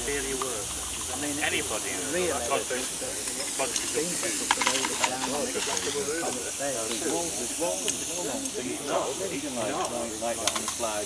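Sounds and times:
steam locomotive hissing: 0.0 - 11.0.

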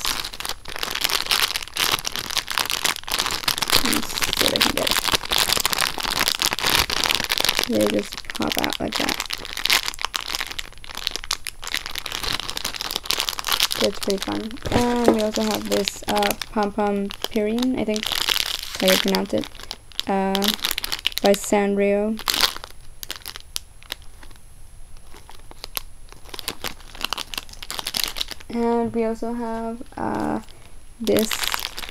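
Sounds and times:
plastic packaging crinkling: 0.0 - 31.9.

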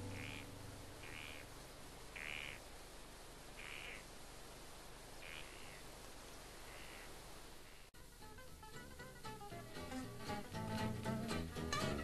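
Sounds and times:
faint animal calls: 0.0 - 1.5, 2.1 - 2.7, 3.5 - 4.1, 5.2 - 5.9, 6.6 - 7.9
steady low hiss: 0.0 - 12.0.

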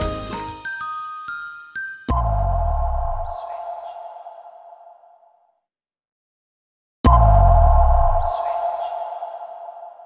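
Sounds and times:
ringing tone: 1.3 - 5.2, 7.1 - 10.0.

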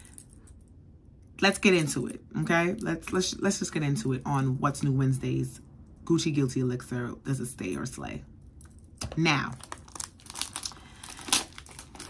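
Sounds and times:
packaging crinkling: 8.6 - 12.0.

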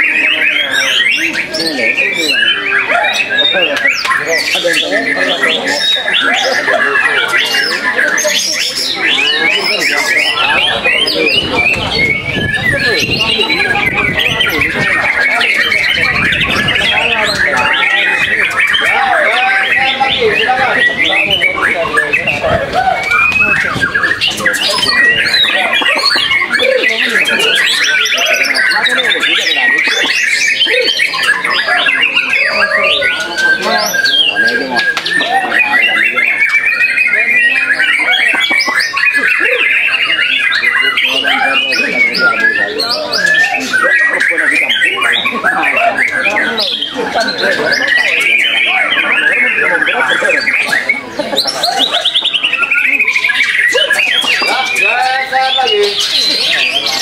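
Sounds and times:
other birdsong: 0.0 - 57.0.

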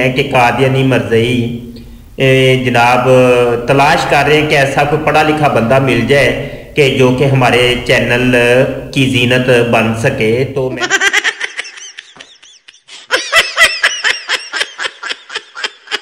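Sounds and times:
man speaking: 0.0 - 10.9
high-pitched giggling laugh effect: 10.8 - 16.0.

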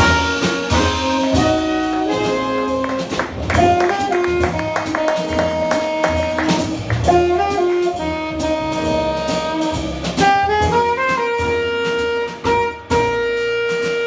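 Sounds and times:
alto saxophone melody: 0.0 - 14.0
double bass: 0.0 - 14.0
drum kit with cymbals: 0.0 - 14.0
piano: 0.0 - 14.0.

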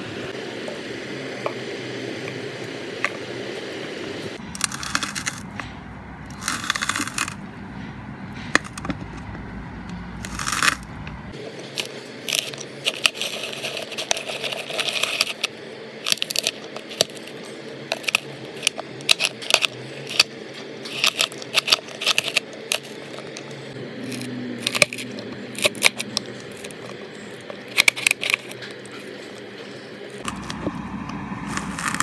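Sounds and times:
steady machine hum: 0.0 - 32.0
grater shredding coconut: 4.5 - 5.5, 6.3 - 7.4, 10.2 - 10.9, 11.6 - 15.5, 16.1 - 29.5, 31.4 - 32.0.

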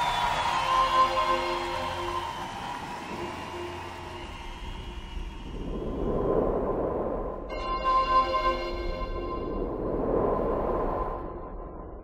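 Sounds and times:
steady low rumbling noise: 0.0 - 12.0.

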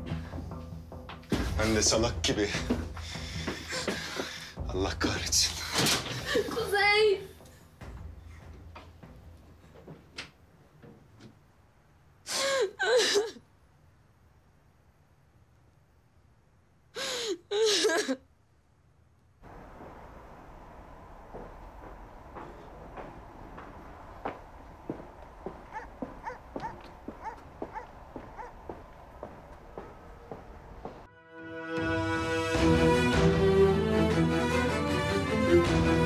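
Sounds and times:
footsteps on paved sidewalk: 2.5 - 4.8, 19.4 - 31.1
faint breathing: 2.6 - 4.6
woman sobbing: 12.3 - 13.5, 17.0 - 18.3.

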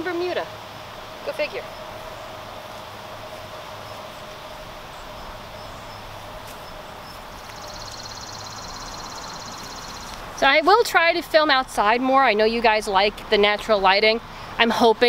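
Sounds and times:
steady background hiss: 0.0 - 15.0
high pulsing insect buzz: 0.8 - 10.2.

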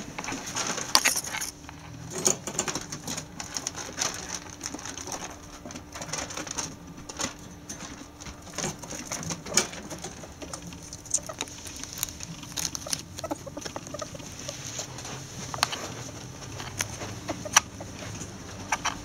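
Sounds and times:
claws scrabbling on wire cage: 2.1 - 19.0.

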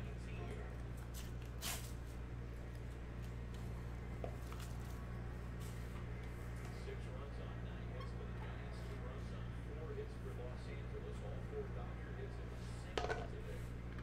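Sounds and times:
steady low hum: 0.0 - 14.0.

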